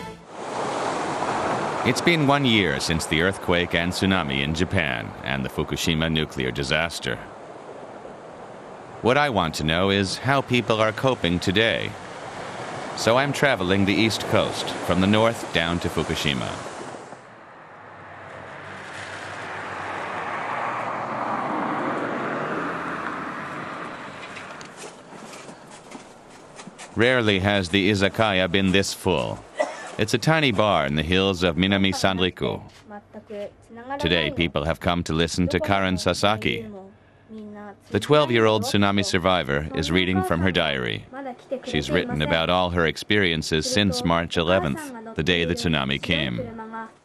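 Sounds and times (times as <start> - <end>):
ocean surf breaking: 0.0 - 25.0
rushing outdoor noise: 0.0 - 32.7, 33.5 - 47.0.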